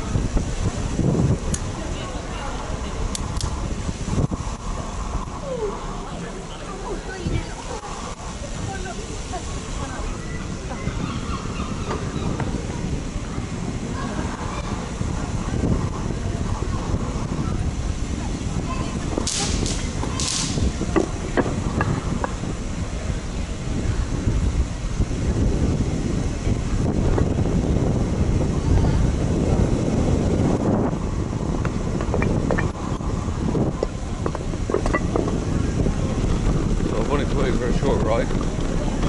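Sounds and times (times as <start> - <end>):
bicycle tyre rumble: 0.0 - 39.0
wind buffeting microphone: 0.0 - 39.0
bike rattles and clicks: 19.0 - 22.9, 31.4 - 39.0.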